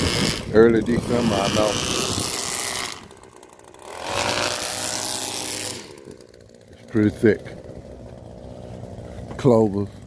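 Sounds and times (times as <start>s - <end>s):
string trimmer revving and idling: 0.0s - 10.0s.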